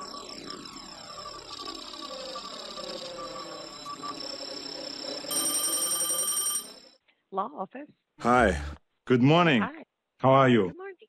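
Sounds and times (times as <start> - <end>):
pulsing telephone ring: 0.0 - 7.0.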